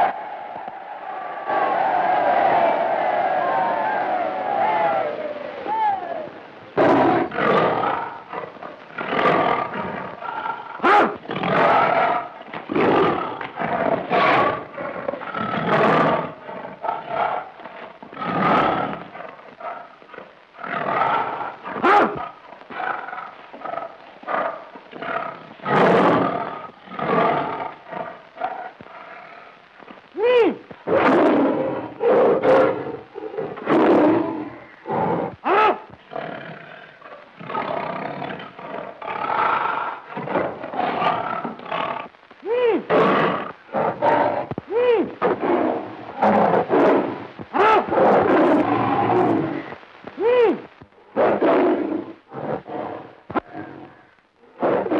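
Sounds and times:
tiger roaring and growling: 6.8s - 29.5s, 30.9s - 42.1s, 42.8s - 49.7s, 51.2s - 54.9s.

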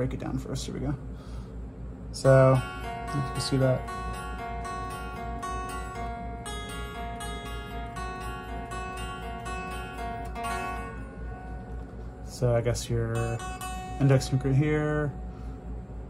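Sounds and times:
electric guitar lead melody: 2.2s - 15.6s.

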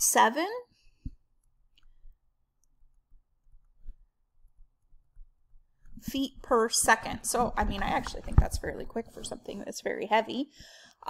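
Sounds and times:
woman speaking: 0.0s - 0.7s, 6.0s - 10.6s.

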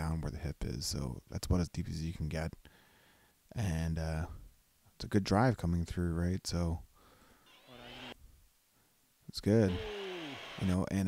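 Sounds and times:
faint short humming voice: 9.7s - 10.6s.

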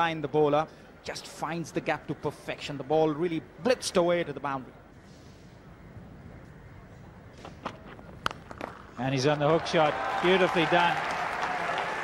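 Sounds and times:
faint ground ambience: 0.0s - 10.9s.

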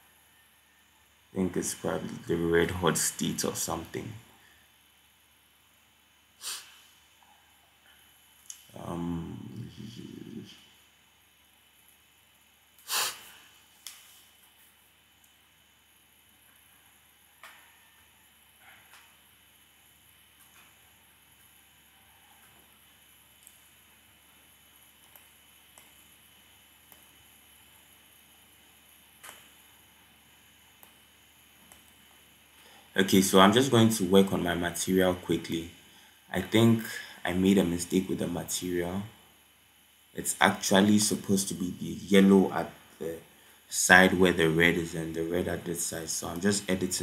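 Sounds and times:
sharp breathy noise: 6.4s - 7.1s, 12.8s - 13.7s, 36.9s - 37.2s
faint clicks: 8.3s - 8.7s, 23.4s - 23.7s, 25.0s - 26.1s, 26.9s - 27.2s, 30.8s - 31.0s
low murmur: 8.7s - 10.6s.

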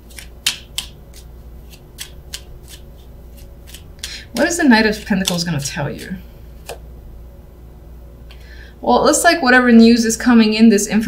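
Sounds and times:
cards being shuffled: 0.0s - 6.8s.

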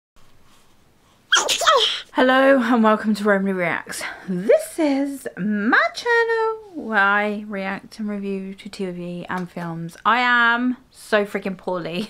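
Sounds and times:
woman sneezing into a tissue: 1.3s - 2.1s.

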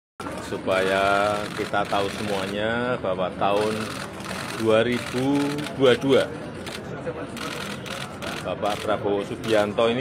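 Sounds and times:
background hubbub: 0.2s - 10.0s.

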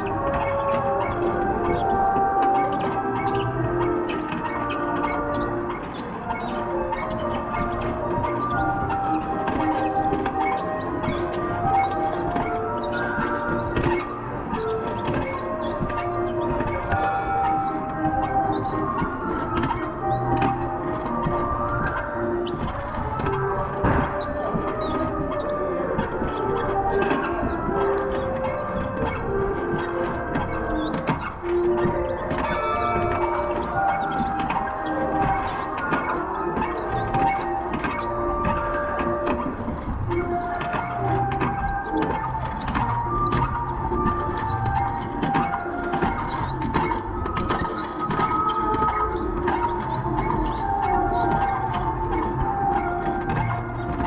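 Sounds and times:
instrumental melody of held notes: 0.0s - 54.0s.

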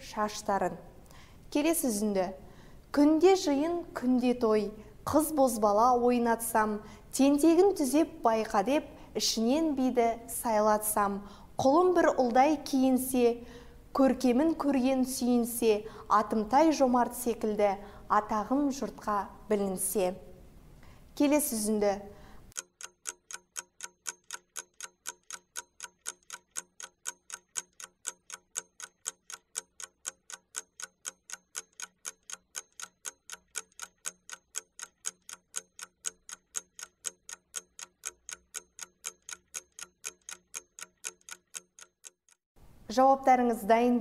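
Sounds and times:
clock-like timer ticking: 22.5s - 42.4s.

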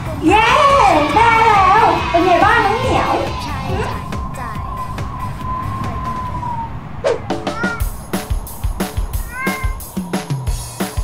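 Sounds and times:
background music: 0.0s - 6.6s, 7.2s - 11.0s
kitten meowing: 9.2s - 9.8s.

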